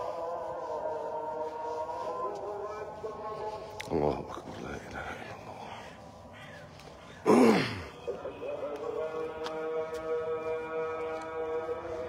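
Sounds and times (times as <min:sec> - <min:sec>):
harsh bird calls: 0:04.8 - 0:08.5.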